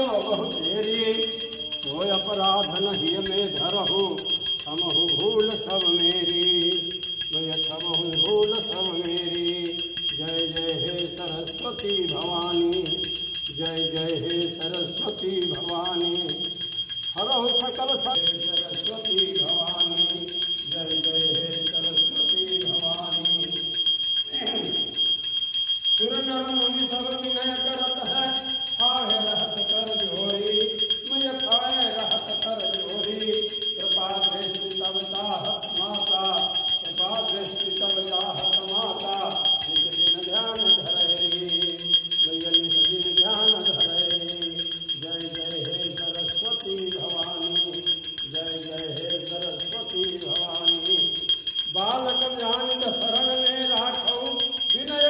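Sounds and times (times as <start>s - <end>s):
small brass bell ringing: 0.0s - 55.0s
voices singing: 0.0s - 55.0s.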